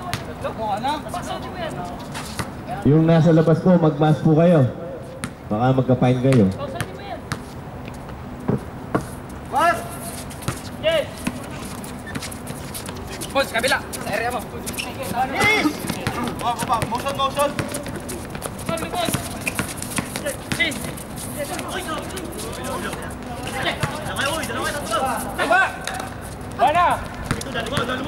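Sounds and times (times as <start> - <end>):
basketball bouncing: 5.2 - 5.4, 6.3 - 7.4, 15.4 - 21.0, 23.7 - 24.2, 27.0 - 28.0
running footsteps: 10.0 - 28.0
players shouting: 13.2 - 28.0.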